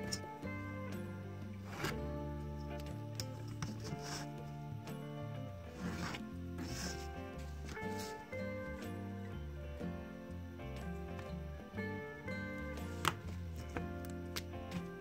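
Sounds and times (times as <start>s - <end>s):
instrumental music: 0.0s - 15.0s
pen scratching on paper: 3.6s - 4.4s, 5.7s - 7.1s.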